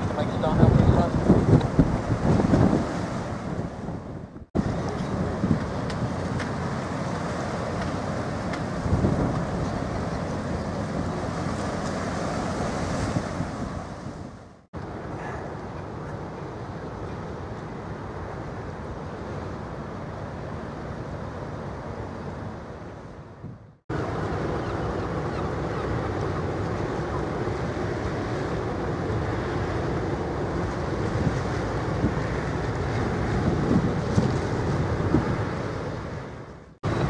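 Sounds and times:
wind buffeting microphone: 0:00.0 - 0:17.1, 0:23.4 - 0:37.0
low rumble of ship engines: 0:00.0 - 0:37.0.

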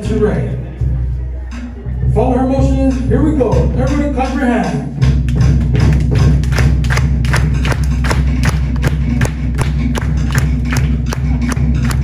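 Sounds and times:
deep skin drums: 0:02.6 - 0:12.0.

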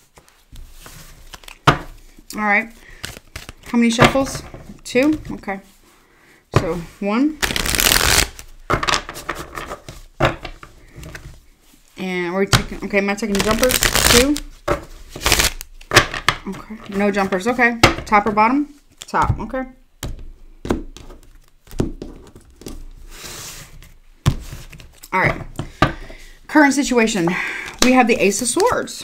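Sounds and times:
cards tapping and rubbing: 0:00.1 - 0:02.1, 0:02.8 - 0:05.5, 0:07.4 - 0:11.3, 0:12.6 - 0:18.3, 0:20.0 - 0:26.1.

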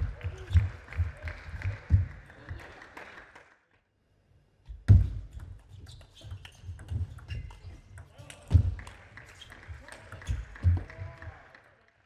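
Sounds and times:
footwork thuds: 0:04.7 - 0:05.6.

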